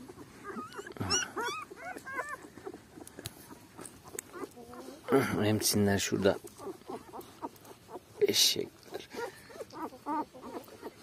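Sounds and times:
puppies whimpering: 0:00.0 - 0:11.0.

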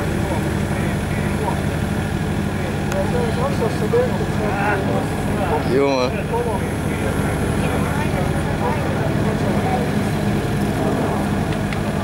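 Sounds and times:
crowd voices chattering: 0:00.0 - 0:12.0
excavator engine running: 0:00.0 - 0:12.0.

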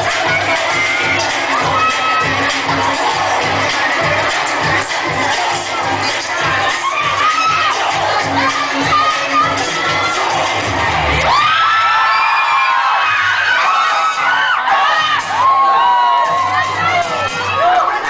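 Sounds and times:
dance music with steady beat: 0:00.0 - 0:11.6, 0:12.7 - 0:18.0
audience screaming and cheering: 0:00.0 - 0:18.0.

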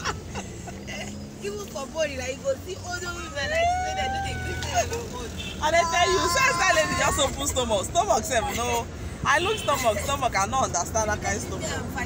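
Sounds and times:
laughter: 0:00.0 - 0:01.3.

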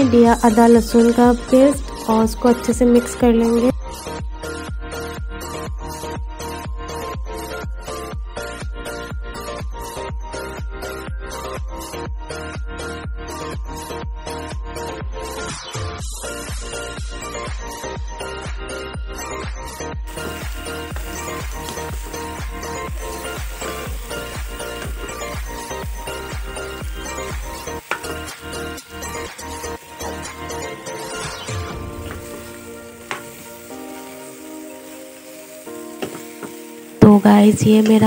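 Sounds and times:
background music with beat: 0:00.0 - 0:38.0
vegetables sizzling in a wok: 0:20.1 - 0:38.0.

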